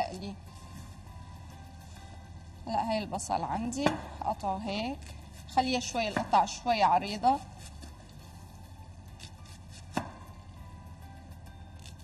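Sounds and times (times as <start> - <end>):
faint background music: 0.0 - 12.0
knife slicing onion on board: 9.2 - 10.3.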